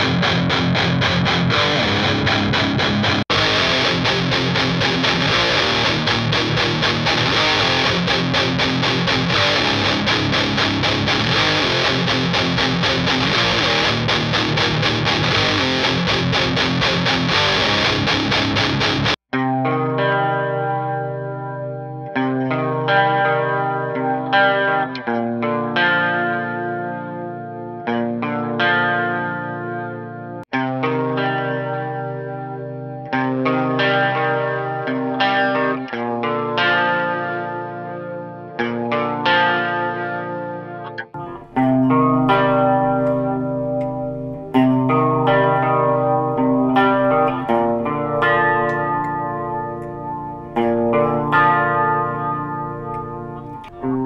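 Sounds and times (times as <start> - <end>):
electric guitar chords: 0.0 - 54.0.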